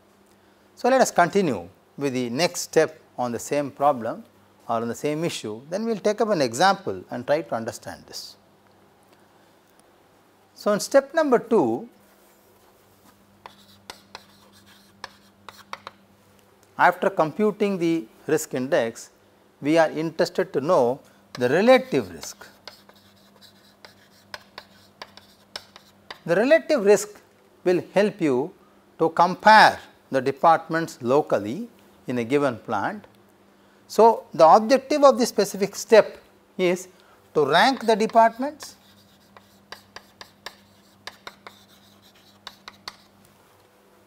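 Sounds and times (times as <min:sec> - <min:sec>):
chalk scratching on chalkboard: 0:12.2 - 0:16.0, 0:21.4 - 0:26.3, 0:37.5 - 0:43.2
chalk tapping on chalkboard: 0:13.4 - 0:16.0, 0:21.3 - 0:26.3, 0:37.6 - 0:43.2.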